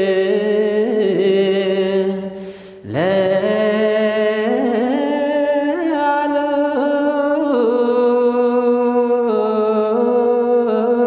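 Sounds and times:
slow vocal chant: 0.0s - 11.0s.

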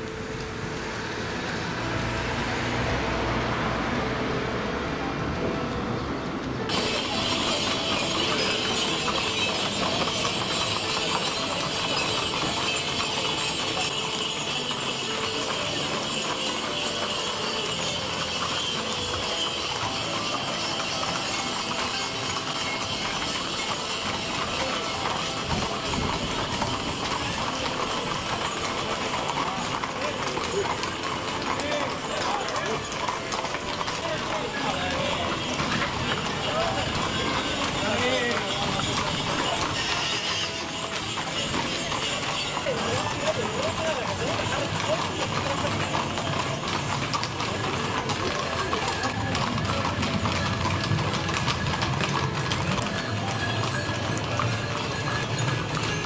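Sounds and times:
horse hooves clip-clopping on asphalt: 6.4s - 56.0s
people talking: 6.7s - 56.0s.

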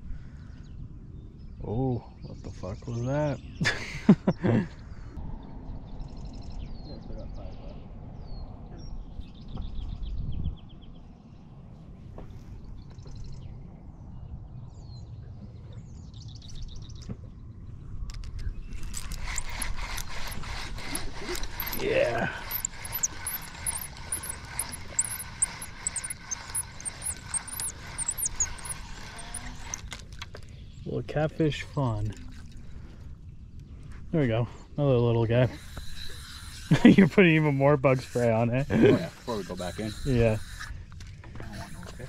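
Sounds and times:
wind on microphone: 7.4s - 11.1s
fishing reel whirring: 18.7s - 30.4s, 35.4s - 42.0s
faint bird chirps: 21.2s - 29.9s.

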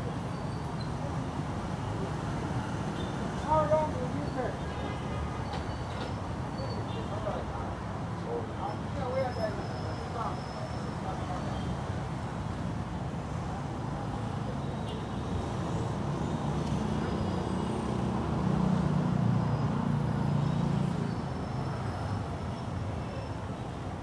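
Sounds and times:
city street traffic: 0.0s - 24.0s.

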